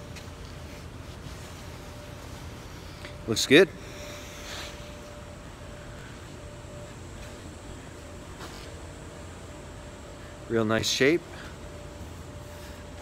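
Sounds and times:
soft rustle: 0.0 - 3.0
faint steady hum: 0.0 - 13.0.

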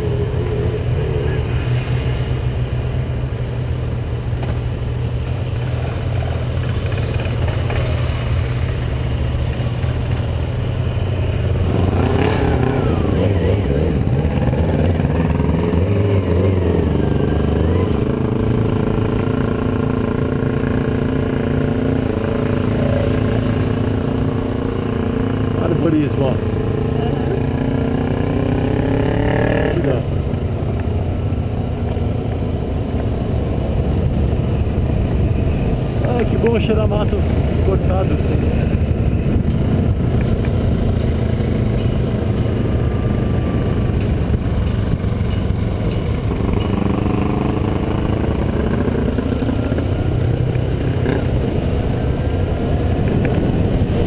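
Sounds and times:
motorcycle engine: 0.0 - 54.0.

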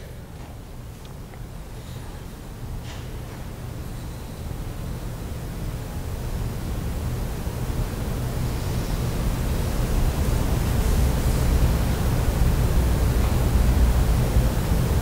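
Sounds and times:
room tone hum and hiss: 0.0 - 15.0.

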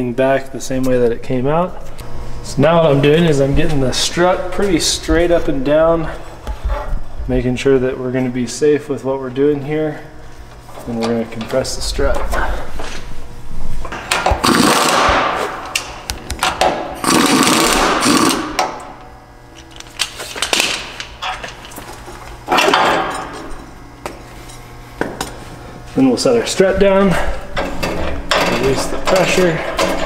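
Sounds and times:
power tool running: 13.3 - 21.1.

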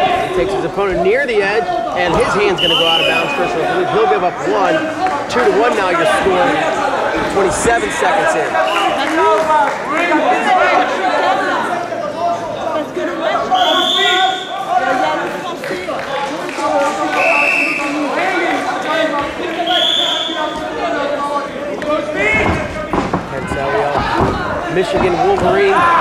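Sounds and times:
voices calling out in hall: 0.0 - 26.0.

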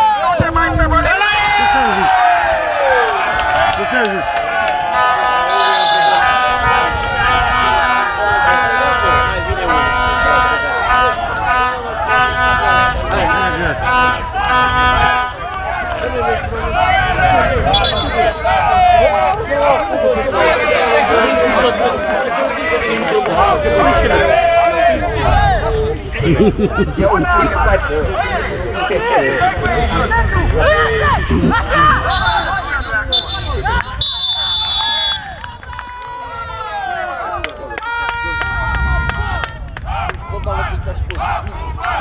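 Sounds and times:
men shouting and cheering: 0.0 - 42.0.

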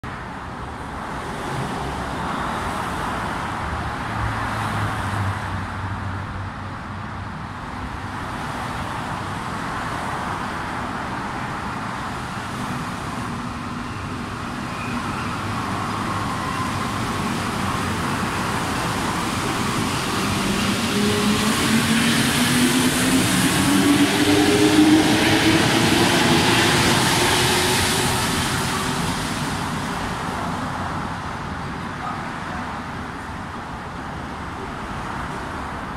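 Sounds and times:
metro train rolling rumble: 0.1 - 35.9.

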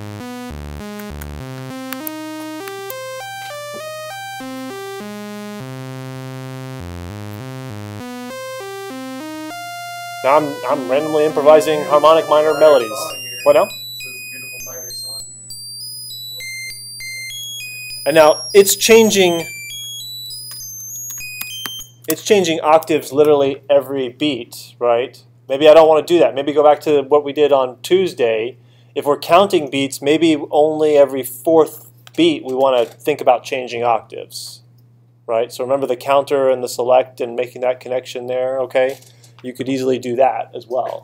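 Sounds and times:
high electronic tones: 0.0 - 22.0
synthesized random melody: 0.0 - 22.0.

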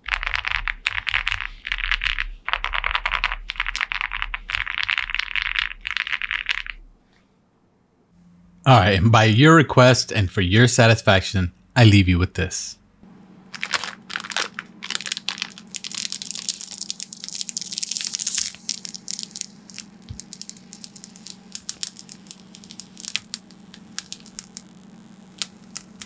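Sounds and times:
plastic film peeling and crackling: 0.0 - 6.9, 13.5 - 26.0.

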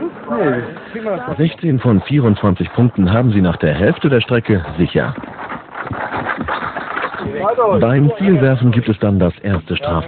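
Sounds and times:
footfalls on dirt: 0.3 - 8.4.

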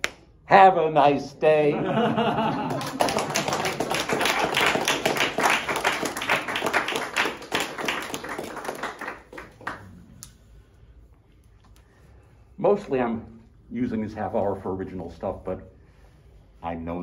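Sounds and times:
audience applauding: 2.5 - 9.9.

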